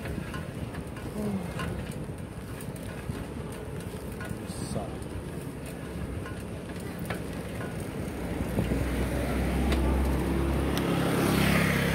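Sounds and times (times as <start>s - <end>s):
bicycle rolling noise: 0.0s - 11.9s.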